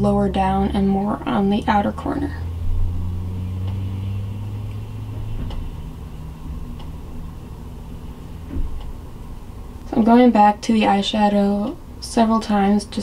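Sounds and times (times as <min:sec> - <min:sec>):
low mechanical hum: 0:00.0 - 0:13.0
faint ticks: 0:03.6 - 0:03.8
soft thump: 0:08.5 - 0:08.8.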